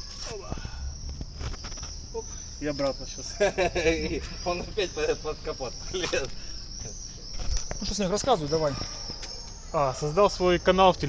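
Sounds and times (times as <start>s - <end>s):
crickets chirping: 0.0s - 11.0s
microphone handling rumble: 0.4s - 2.6s.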